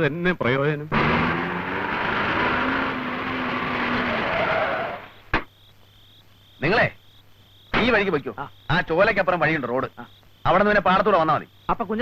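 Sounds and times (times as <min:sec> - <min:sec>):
car engine and tyre noise: 0:00.9 - 0:05.3.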